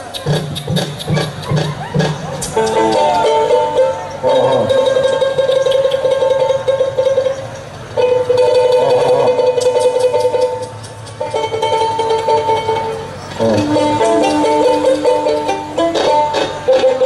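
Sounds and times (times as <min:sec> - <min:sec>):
plucked string instrument tremolo: 0:00.7 - 0:17.0.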